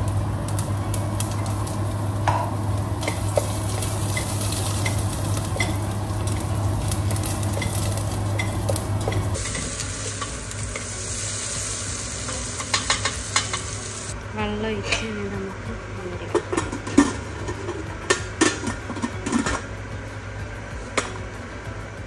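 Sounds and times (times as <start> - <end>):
vegetables sizzling in a pot: 0.0 - 21.6.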